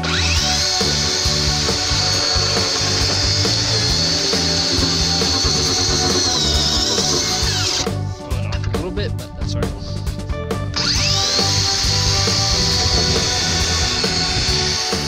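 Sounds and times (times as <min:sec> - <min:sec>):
circular saw cutting: 0:00.0 - 0:08.0, 0:10.8 - 0:15.0.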